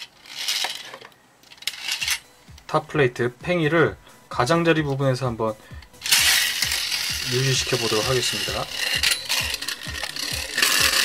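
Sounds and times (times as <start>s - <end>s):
spinning top rattling on plastic: 0.0s - 2.3s, 5.8s - 11.0s.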